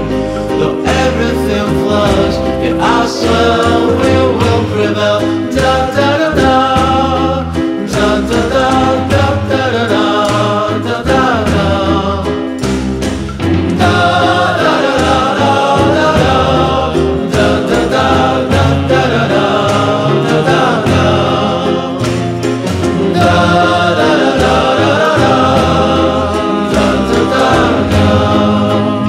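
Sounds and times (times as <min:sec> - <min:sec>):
psychedelic pop song: 0:00.0 - 0:29.0.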